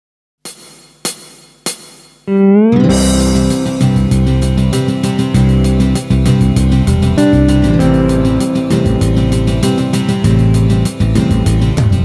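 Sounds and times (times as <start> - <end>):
backing track: 0.5 - 12.0.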